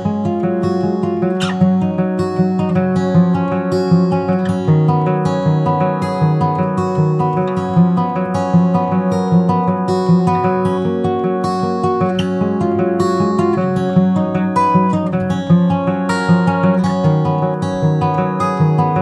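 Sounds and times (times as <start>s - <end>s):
acoustic guitar picking: 0.0s - 19.0s.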